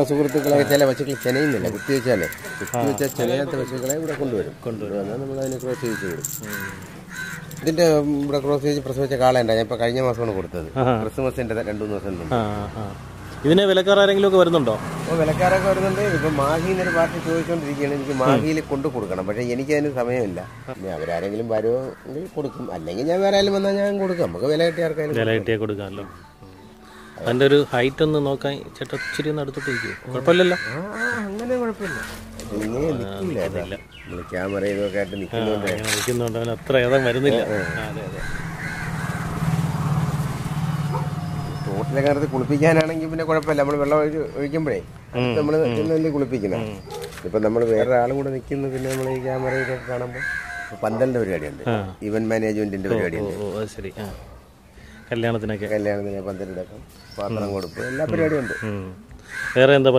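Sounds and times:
man speaking: 0.0 - 6.8, 41.6 - 49.3, 51.0 - 54.2
man talking: 0.0 - 6.8, 7.6 - 26.2, 27.2 - 38.2, 41.6 - 50.2, 50.8 - 54.2.

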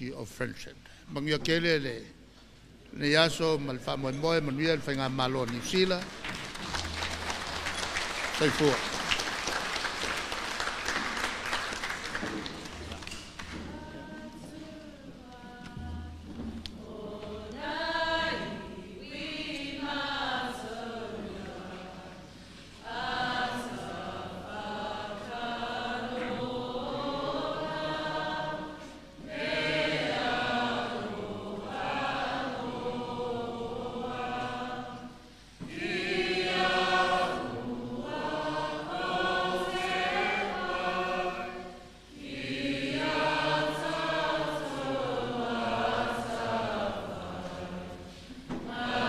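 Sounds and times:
choir singing: 16.8 - 49.0.

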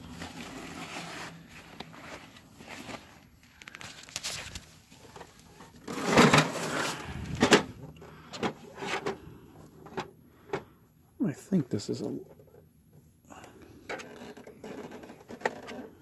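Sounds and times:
plastic scraping: 5.0 - 9.2, 13.8 - 16.0.

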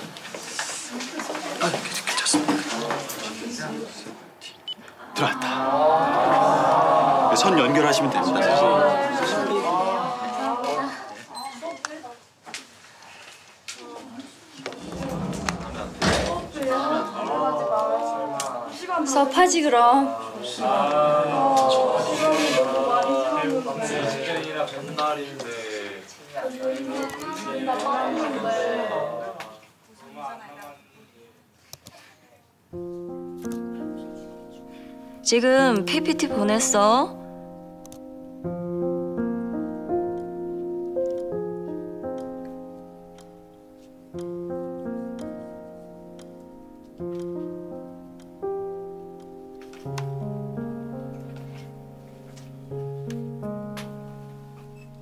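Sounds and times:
students chattering: 0.0 - 12.3, 13.8 - 30.6.

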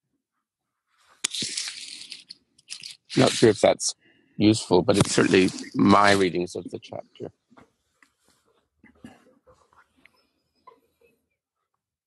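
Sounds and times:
crackling rustling on microphone: 0.9 - 3.7, 4.9 - 6.8, 7.4 - 11.1
short scrapes: 1.0 - 3.6, 5.0 - 6.3.

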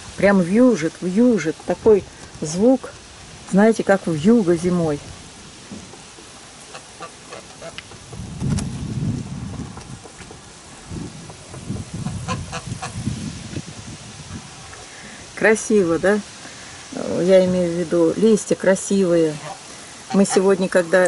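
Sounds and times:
strong wind gusting on microphone: 0.0 - 5.9, 7.6 - 18.2
geese honking: 6.6 - 7.9, 12.0 - 13.0, 19.3 - 21.0.

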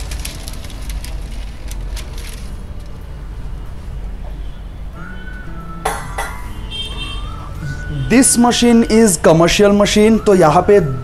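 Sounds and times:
baking paper crinkling: 0.0 - 3.0.

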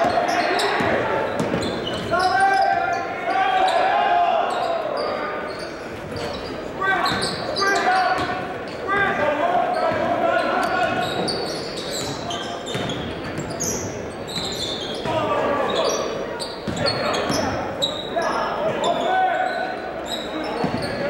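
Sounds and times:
sneaker squeaks: 0.0 - 3.9, 4.5 - 9.0, 9.6 - 21.0.

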